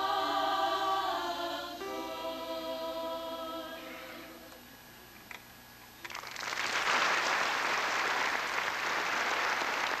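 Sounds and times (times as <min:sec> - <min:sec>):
audience applause: 0:06.1 - 0:10.0.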